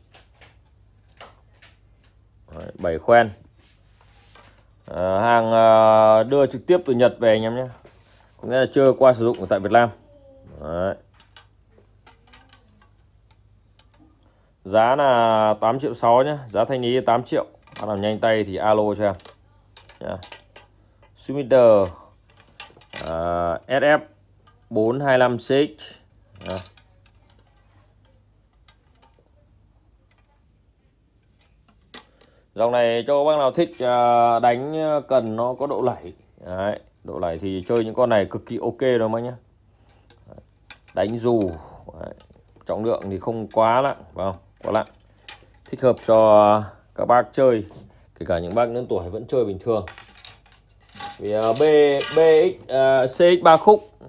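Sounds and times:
fishing rod clinking on tiled floor: 49.9s - 52.5s.

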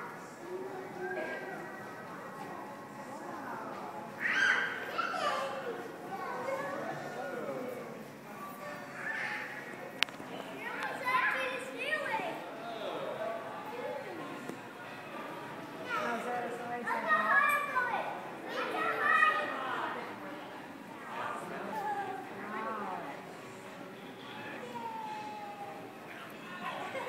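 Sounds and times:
children and people talking: 0.0s - 27.0s.

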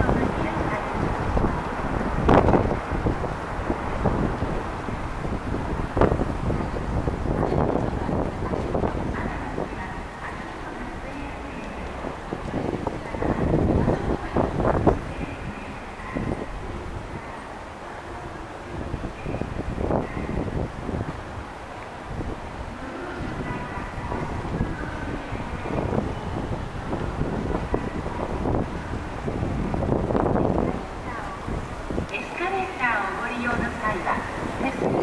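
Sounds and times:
low city rumble: 0.0s - 35.0s
wind on microphone: 0.0s - 35.0s.

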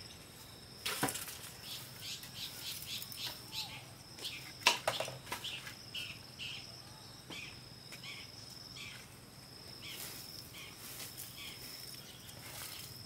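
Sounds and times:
insects trilling: 0.0s - 13.0s.

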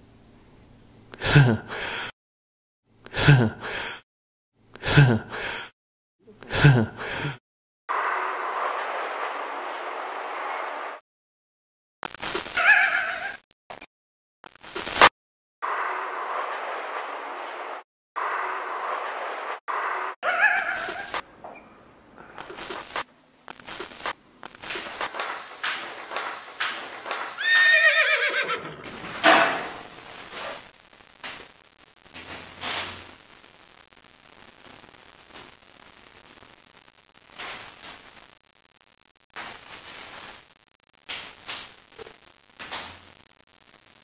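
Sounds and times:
horse whinnying: 27.4s - 29.8s.

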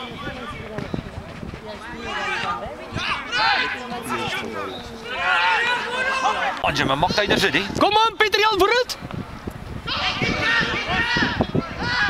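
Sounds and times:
indistinct voices outdoors: 0.0s - 12.0s.

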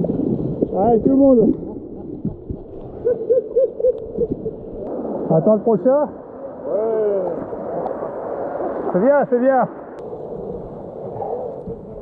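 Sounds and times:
water rushing over weir: 0.0s - 12.0s.

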